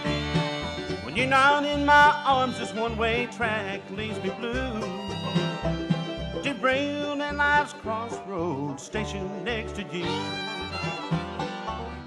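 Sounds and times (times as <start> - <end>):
acoustic guitar: 0.0 - 12.0
fiddle: 0.0 - 12.0
mandolin: 0.0 - 12.0
upright bass: 0.0 - 12.0.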